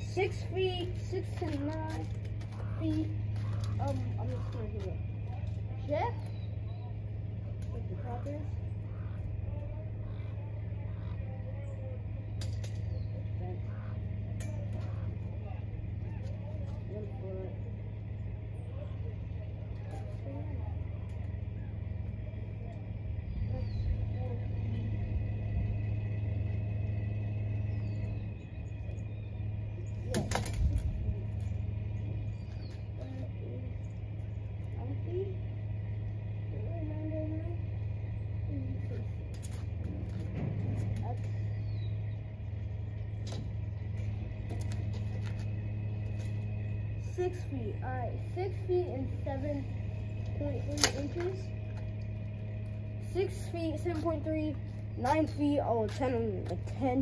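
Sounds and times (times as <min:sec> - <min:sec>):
engine idling: 0:00.0 - 0:57.0.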